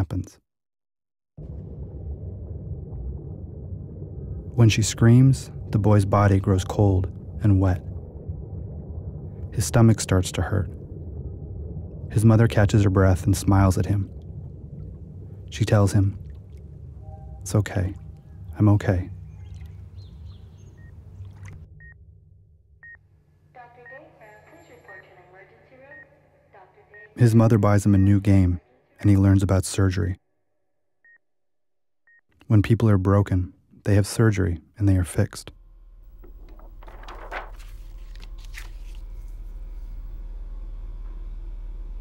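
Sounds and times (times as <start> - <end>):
murmur of water: 1.4 - 21.7
steady low hum: 1.4 - 29.4, 33.9 - 42.0.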